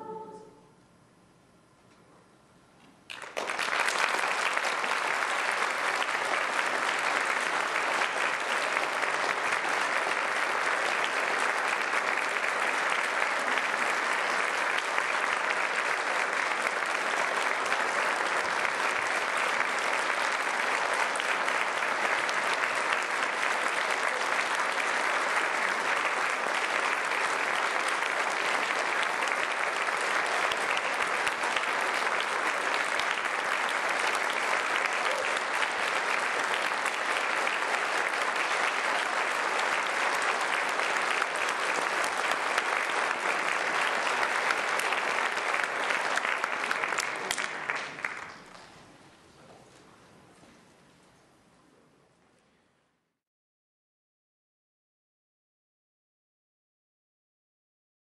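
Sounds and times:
audience applauding: 0:03.1 - 0:49.0.

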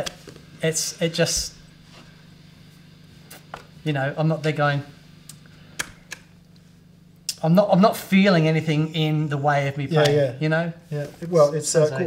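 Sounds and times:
amplifier mains hum: 0:00.0 - 0:12.0
man speaking: 0:07.4 - 0:12.0.

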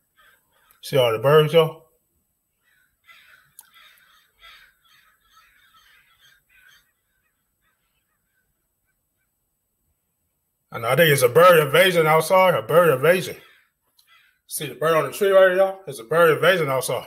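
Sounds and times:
crows cawing: 0:00.0 - 0:00.8, 0:02.5 - 0:09.3, 0:13.1 - 0:14.5.

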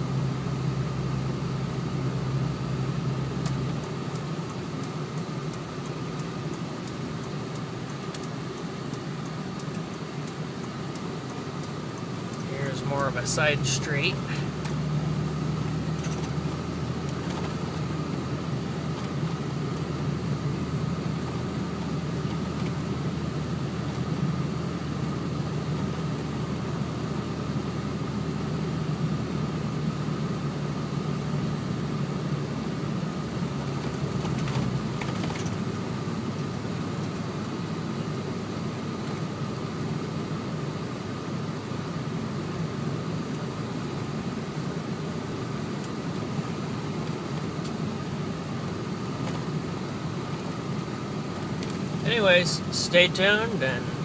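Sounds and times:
truck engine and tyre noise: 0:00.0 - 0:54.0.

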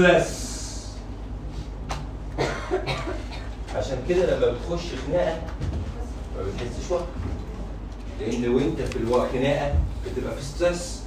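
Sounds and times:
man talking: 0:00.0 - 0:01.0, 0:03.7 - 0:05.6, 0:06.4 - 0:07.4, 0:08.1 - 0:11.0
steady low hum: 0:00.0 - 0:11.0
person coughing: 0:02.4 - 0:03.6.

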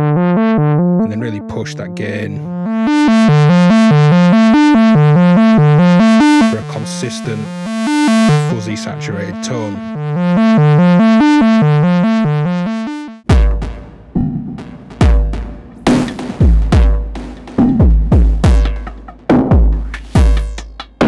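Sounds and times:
fuzzy synth note sequence: 0:00.0 - 0:13.9
distorted drum machine beat: 0:02.5 - 0:14.0, 0:14.6 - 0:21.0.

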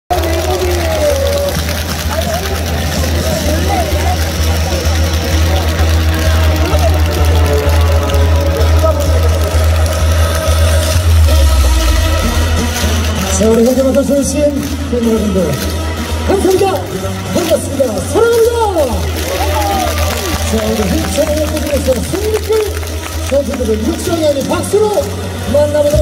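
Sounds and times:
crowd voices: 0:00.1 - 0:26.0
loud music with booming bass: 0:00.1 - 0:26.0.

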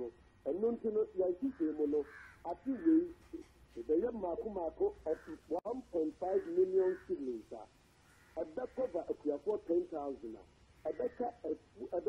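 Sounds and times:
man talking over telephone: 0:00.0 - 0:07.7, 0:08.4 - 0:12.0.

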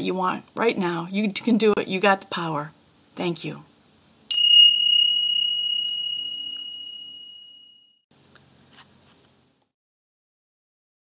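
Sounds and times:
high-pitched chime ringing: 0:04.3 - 0:08.0.

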